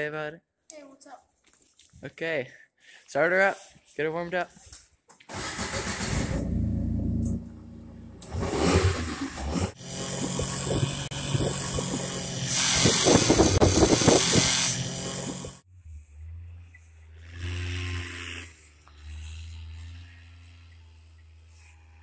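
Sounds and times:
engine starting and revving: 0:05.3 - 0:15.6
tyres throwing up snow hiss: 0:09.5 - 0:15.6.

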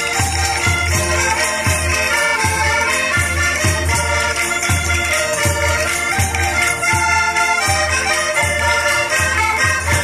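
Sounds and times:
folk dance melody: 0:00.0 - 0:10.0.

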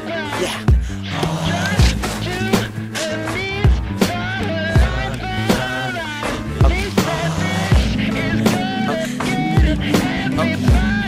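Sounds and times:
hip hop music: 0:00.0 - 0:11.0
person rapping: 0:00.0 - 0:11.0
heavy kick drum beat: 0:04.8 - 0:05.6.

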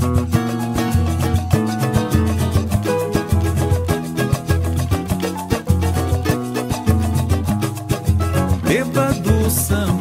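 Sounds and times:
instrumental samba music: 0:00.0 - 0:10.0.

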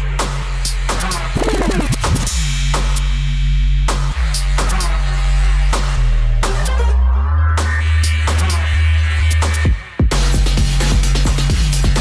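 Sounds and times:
electronic music with bass and drums: 0:00.0 - 0:12.0.

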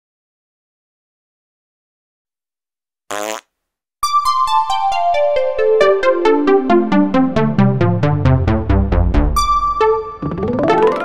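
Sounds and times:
cartoon fart sound effect: 0:03.1 - 0:03.5.

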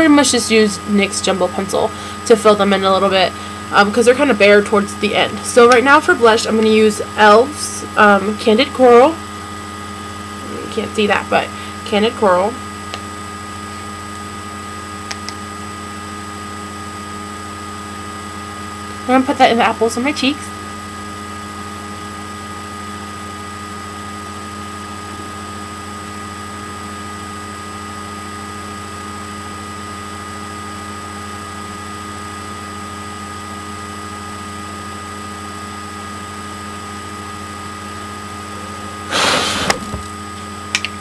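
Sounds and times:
electrical hum and hiss: 0:00.0 - 0:26.4, 0:35.5 - 0:41.0
whining tones: 0:37.8 - 0:40.4.

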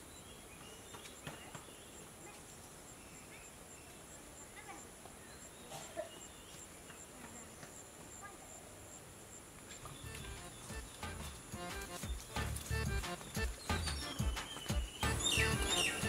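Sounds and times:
high insect drone: 0:01.2 - 0:16.0
music: 0:10.0 - 0:16.0
pulsing high chirp: 0:10.0 - 0:16.0.

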